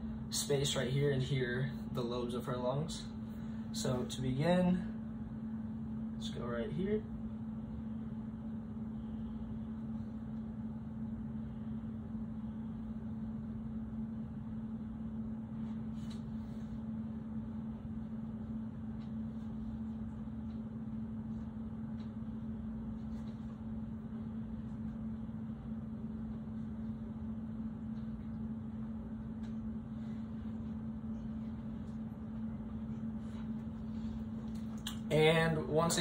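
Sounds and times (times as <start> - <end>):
steady low room hum: 0.0 - 36.0.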